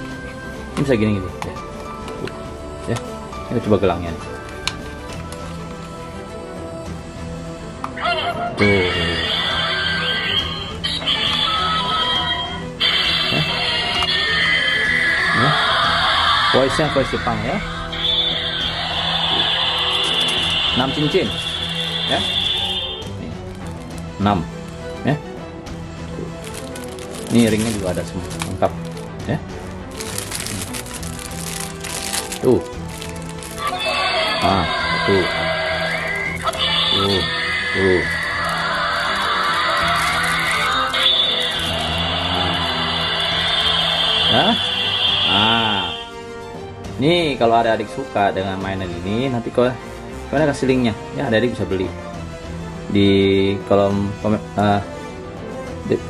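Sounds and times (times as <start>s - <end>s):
background music: 0.0s - 56.0s
toy electronic sound effects and jingle: 15.4s - 23.1s, 35.9s - 39.3s, 39.9s - 46.1s
plastic bag crinkling: 23.4s - 24.8s, 26.2s - 34.0s, 36.1s - 36.7s, 38.1s - 41.9s.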